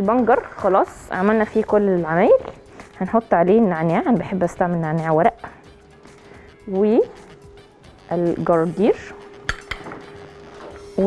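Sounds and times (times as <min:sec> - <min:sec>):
metal spoon clinking on glass: 0:09.5 - 0:09.9.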